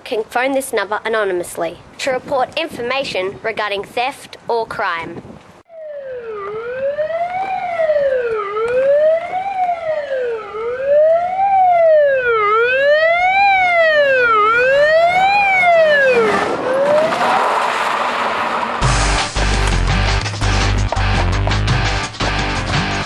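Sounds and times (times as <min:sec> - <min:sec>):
police siren wailing: 0:05.7 - 0:17.8
loud rushing noise: 0:16.0 - 0:20.6.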